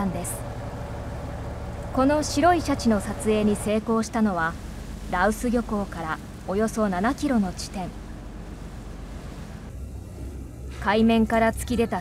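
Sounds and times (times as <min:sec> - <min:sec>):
low steady hum: 0:00.0 - 0:12.0
waves washing: 0:00.4 - 0:09.7.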